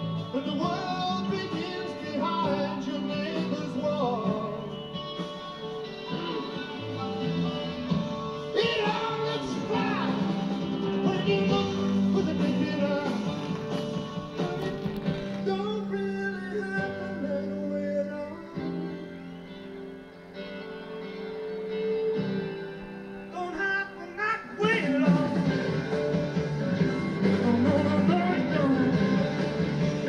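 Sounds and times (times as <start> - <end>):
live rock band on television: 0.0 - 30.0.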